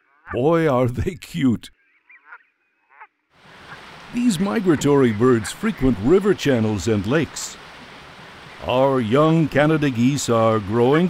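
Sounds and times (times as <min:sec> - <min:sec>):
geese calling: 0:01.8 - 0:11.0
background hiss: 0:03.4 - 0:11.0.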